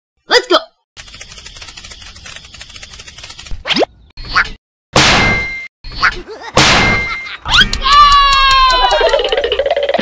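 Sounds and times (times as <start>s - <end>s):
rapid scratchy rattle: 1.0s - 3.5s.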